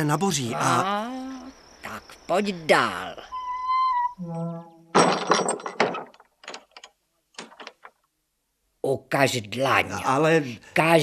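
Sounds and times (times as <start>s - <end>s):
wooden door creaking open: 4.2s - 8.0s
scattered knocks: 4.9s - 8.0s
rattling clatter: 5.0s - 8.0s.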